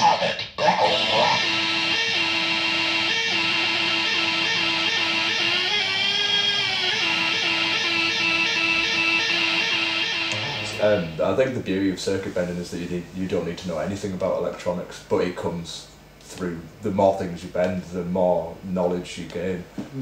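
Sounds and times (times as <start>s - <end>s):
buzzy electronic tone: 0.0s - 11.6s.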